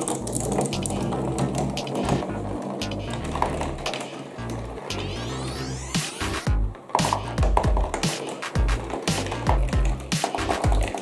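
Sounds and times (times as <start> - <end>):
glass marbles clattering: 0.0 - 5.9, 6.8 - 11.0
background music: 0.0 - 11.0.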